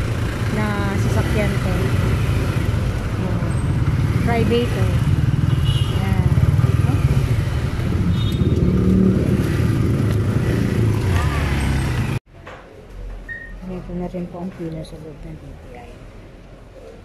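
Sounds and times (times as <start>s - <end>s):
vehicle engine rumbling: 0.0s - 12.2s.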